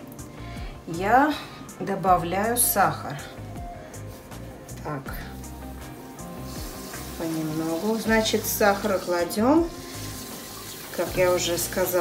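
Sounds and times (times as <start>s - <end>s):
background music: 0.0s - 12.0s
sugar streaming into pot: 5.4s - 12.0s.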